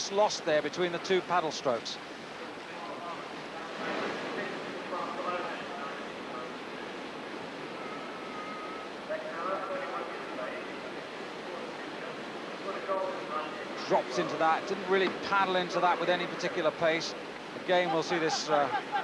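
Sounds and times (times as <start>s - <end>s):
rushing whitewater: 0.0s - 19.0s
faint voices calling: 0.9s - 19.0s.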